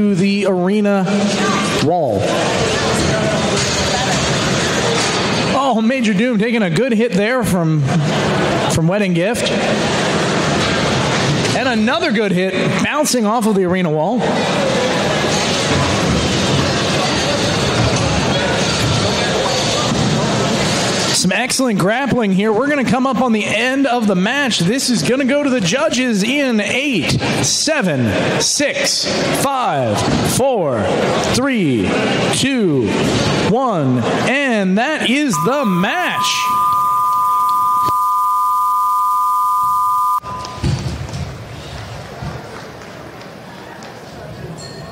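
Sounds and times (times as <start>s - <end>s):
crowd chatter: 0.0s - 12.8s, 14.0s - 21.2s
arena background noise: 0.0s - 44.9s
electronic buzzer two-note tone: 35.3s - 40.7s.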